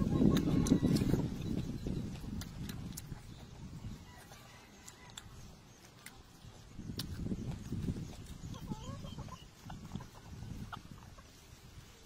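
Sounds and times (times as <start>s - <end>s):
slurping and gulping from a bowl: 0.0s - 5.4s.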